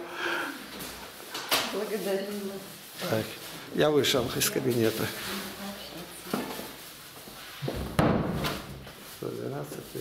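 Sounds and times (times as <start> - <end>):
loud thump: 7.7 - 8.7.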